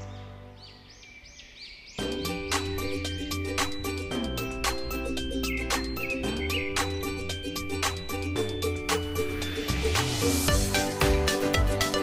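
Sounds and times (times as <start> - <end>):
background music: 0.0 - 1.2, 1.9 - 12.0
high bird-like chirps: 0.0 - 10.5.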